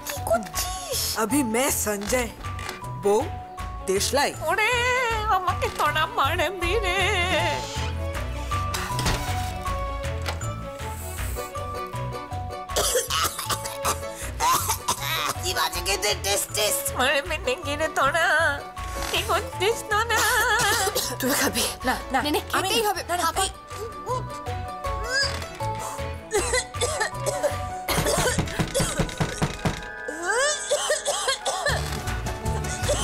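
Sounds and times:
woman coughing harshly: 12.8s - 15.5s, 20.5s - 21.5s, 26.3s - 29.4s, 30.4s - 31.8s.

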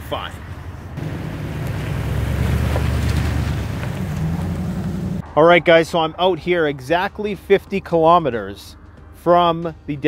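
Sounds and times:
pickup truck engine pulling away: 1.0s - 5.2s.

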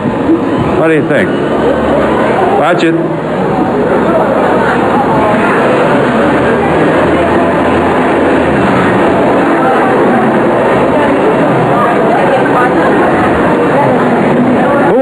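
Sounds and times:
voices: 0.0s - 15.0s.

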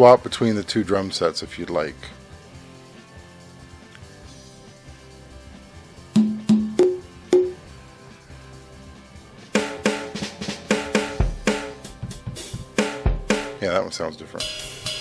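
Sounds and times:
pitched percussion hits: 6.2s - 7.7s.

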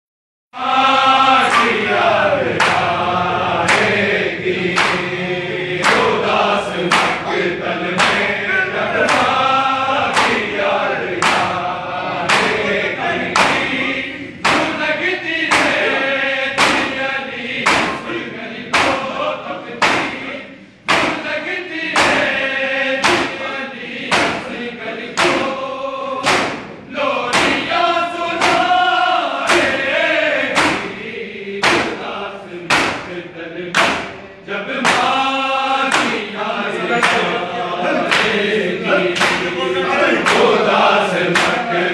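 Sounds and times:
men chanting in unison: 0.6s - 41.9s
chest-beating thuds: 4.7s - 5.2s, 5.8s - 7.3s, 7.9s - 9.4s, 10.0s - 17.0s, 17.6s - 24.6s, 25.2s - 25.6s, 26.2s - 27.8s, 28.4s - 28.9s, 29.5s - 31.0s, 31.6s - 34.2s, 34.8s - 35.2s, 35.9s - 36.3s, 39.1s - 40.6s, 41.2s - 41.7s.

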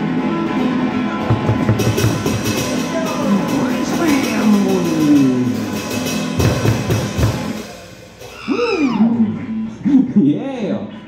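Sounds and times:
man hooting: 8.3s - 9.8s.

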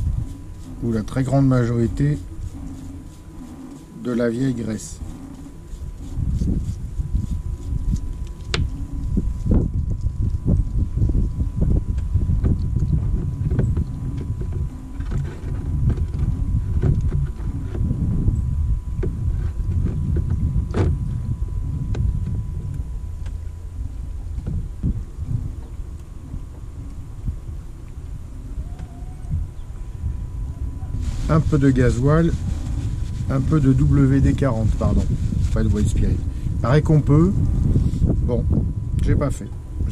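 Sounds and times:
steady low rumble: 0.0s - 39.9s.

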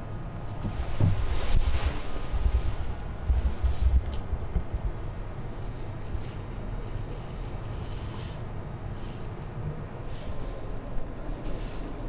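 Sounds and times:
low rumble of turning wheel: 0.0s - 12.0s.

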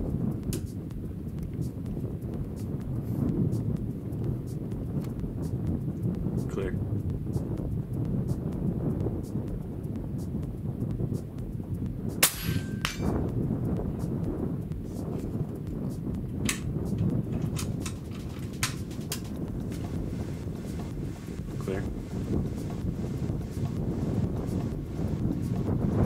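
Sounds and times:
wind rumble on microphone: 0.0s - 26.0s
pellet ringing on steel target: 12.2s - 13.2s.

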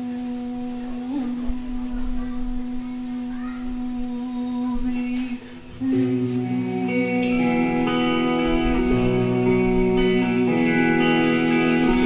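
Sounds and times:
band holding sustained note: 0.0s - 12.0s
full band chord: 5.8s - 12.0s.

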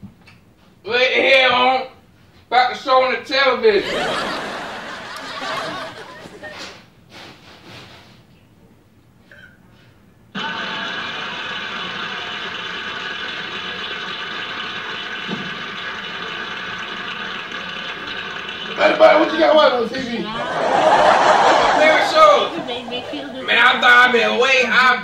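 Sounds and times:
television electronic buzzing hum: 3.7s - 6.6s, 10.3s - 25.0s.

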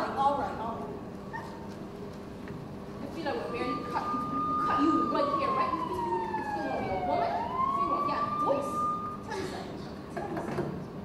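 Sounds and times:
police siren wailing: 3.5s - 9.2s.

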